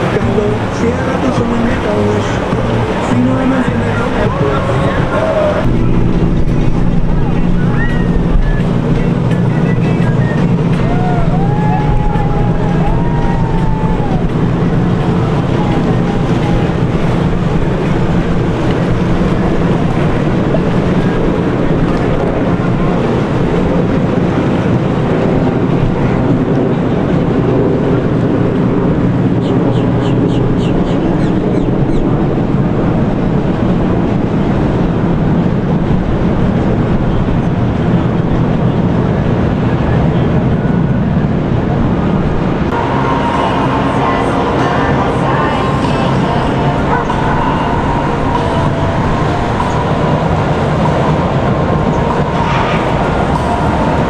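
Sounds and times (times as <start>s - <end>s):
motorboat engine running: 0.0s - 54.0s
wind on microphone: 0.0s - 54.0s.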